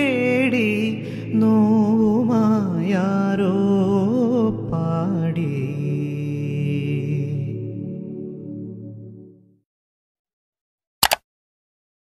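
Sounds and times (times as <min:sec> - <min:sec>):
man singing: 0:00.0 - 0:08.1.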